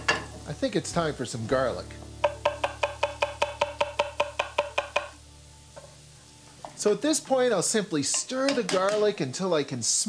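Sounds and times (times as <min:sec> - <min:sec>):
knife chopping on wooden board: 0:02.2 - 0:05.1.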